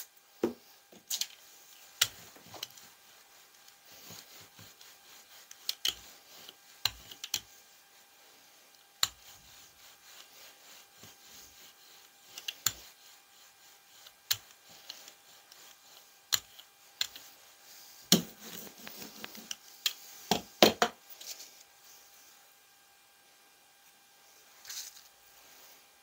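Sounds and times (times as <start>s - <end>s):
roller rubbing over tacky paint: 0.4s - 20.3s.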